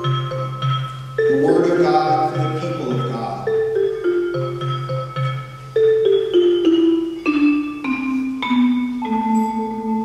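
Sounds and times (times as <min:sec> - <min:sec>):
mallet instruments ringing notes: 0:00.0 - 0:10.0.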